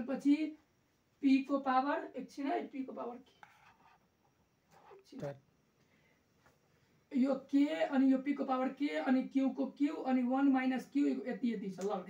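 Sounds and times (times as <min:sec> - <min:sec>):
marker scratching on whiteboard: 0:03.2 - 0:04.1, 0:04.7 - 0:05.0.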